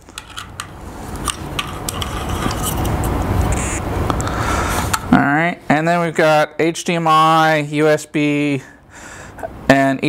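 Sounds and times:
steady rumbling background noise: 0.0s - 10.0s.

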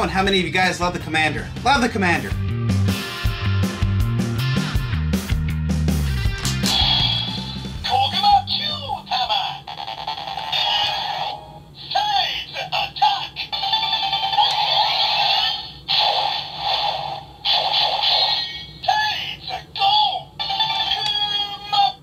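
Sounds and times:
tinny toy speaker sounds: 6.8s - 22.0s.

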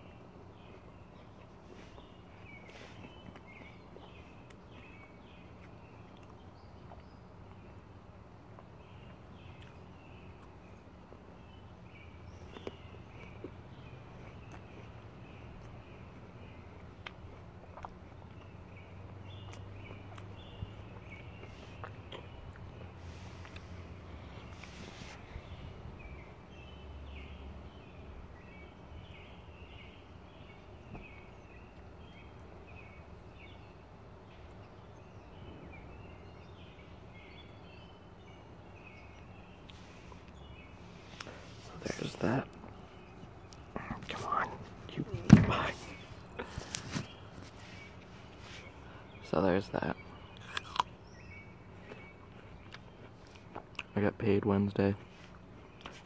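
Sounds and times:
birds chirping: 0.0s - 56.0s
low outdoor background rumble: 0.0s - 56.0s
chewing: 0.5s - 7.8s, 8.4s - 26.2s, 50.2s - 53.9s
apple crunching: 16.4s - 25.6s, 39.6s - 48.7s, 50.2s - 54.0s.

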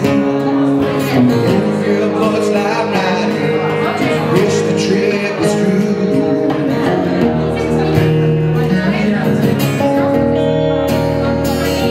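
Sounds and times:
acoustic and electric guitars strumming: 0.0s - 11.9s.

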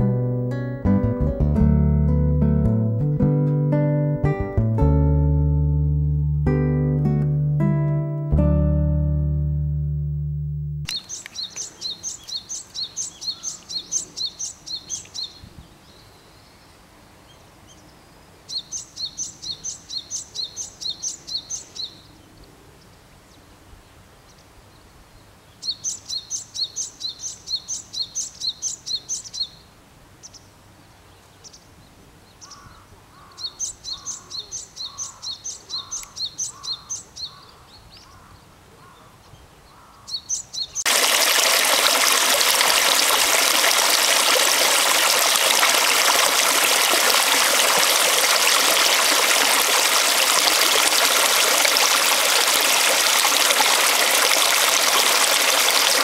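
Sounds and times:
small bird singing: 10.9s - 16.7s, 17.3s - 22.2s, 25.5s - 29.6s, 31.1s - 40.9s
flowing stream rushing: 40.9s - 56.0s.

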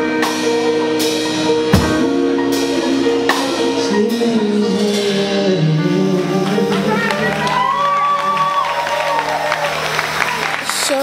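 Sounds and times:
live band held note: 0.0s - 11.0s
audience clapping and cheering: 6.4s - 11.0s.

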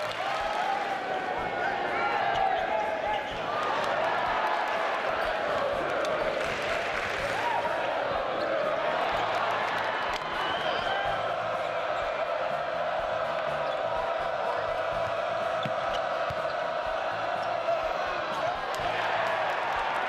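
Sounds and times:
crowd voices humming: 0.0s - 20.0s.

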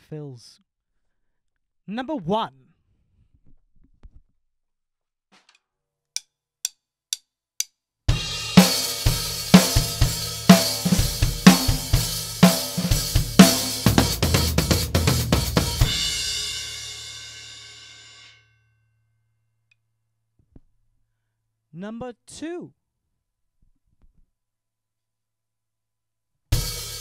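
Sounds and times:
drum kit groove: 8.1s - 18.2s, 26.5s - 27.0s
cymbal ringing: 15.9s - 18.8s.

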